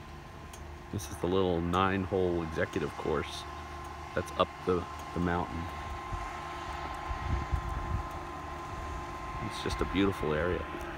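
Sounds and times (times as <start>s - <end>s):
thin high hum: 0.0s - 10.9s
wind buffeting microphone: 5.7s - 10.9s.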